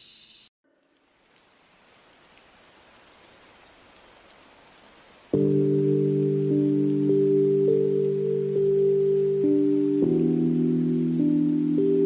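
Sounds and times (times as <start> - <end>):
rain patter: 0.6 - 12.0.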